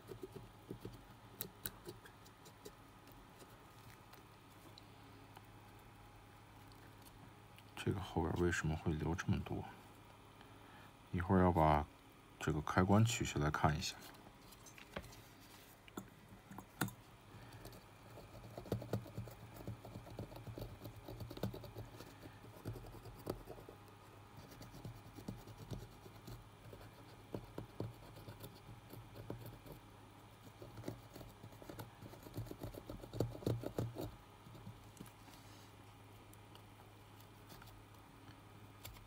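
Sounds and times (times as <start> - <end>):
cotton swab scratching circuit board: 0.0 - 4.1, 17.7 - 34.9.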